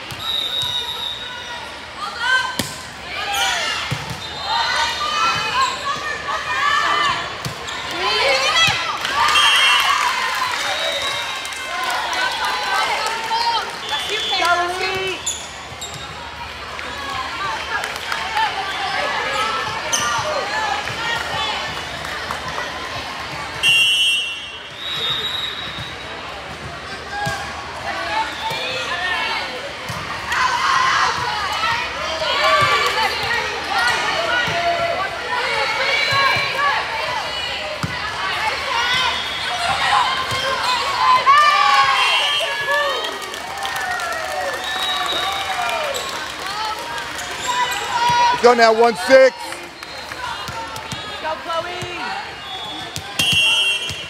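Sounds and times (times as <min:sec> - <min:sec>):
referee's whistle blast: 0:00.2 - 0:01.3, 0:23.6 - 0:26.1, 0:41.9 - 0:42.7, 0:52.4 - 0:54.0.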